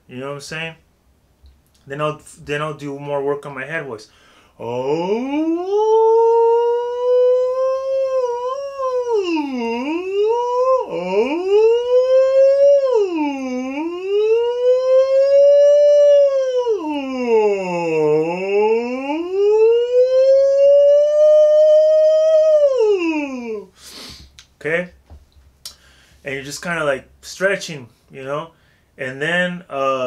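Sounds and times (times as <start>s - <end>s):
man singing vocal siren glides: 4.6s - 23.7s.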